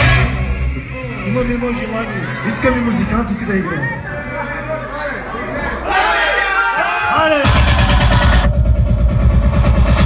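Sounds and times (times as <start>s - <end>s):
fast-pulsing bass beat: 7.4s - 10.0s.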